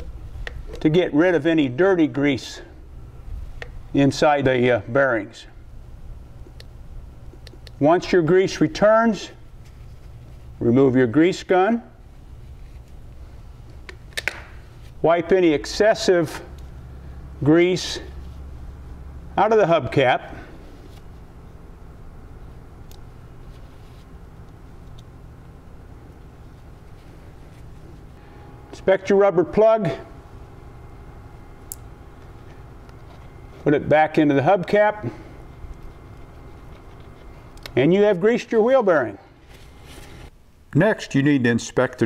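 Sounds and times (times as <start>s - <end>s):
indoor room hum: 0.0s - 42.0s.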